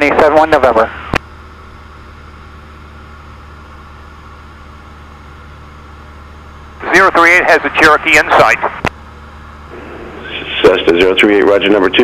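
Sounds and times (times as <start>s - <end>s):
airplane engine and propeller drone: 0.0s - 12.0s.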